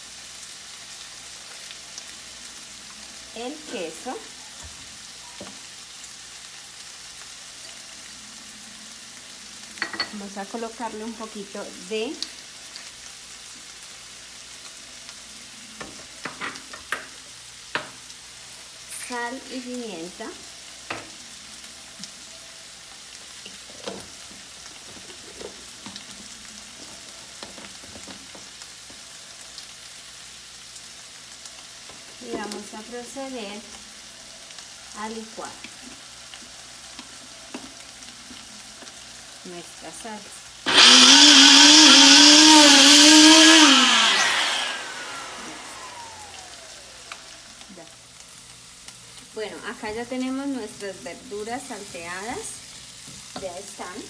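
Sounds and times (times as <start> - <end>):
chicken sizzling in a pan: 0.0 - 54.0.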